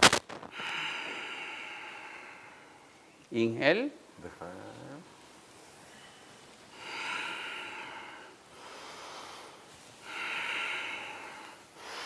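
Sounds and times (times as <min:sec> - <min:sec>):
person breathing deeply: 0:00.5 - 0:03.0, 0:06.7 - 0:12.0.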